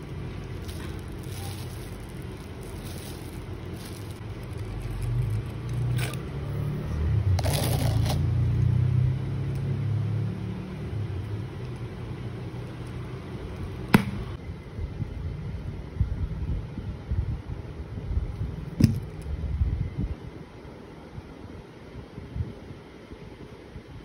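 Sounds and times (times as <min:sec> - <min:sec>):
plastic wrap crinkling: 0:00.0 - 0:06.2.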